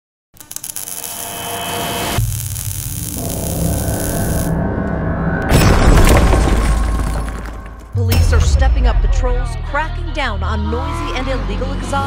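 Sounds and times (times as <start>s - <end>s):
crackling: 0.4s - 4.6s
rushing noise: 1.8s - 6.1s.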